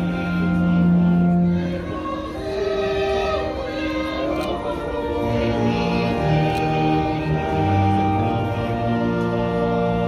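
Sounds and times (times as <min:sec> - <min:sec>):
choir singing slowly: 0:00.0 - 0:10.0.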